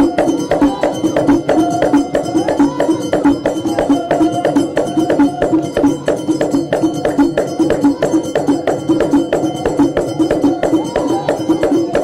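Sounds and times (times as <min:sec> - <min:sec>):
traditional percussion music: 0:00.0 - 0:12.0.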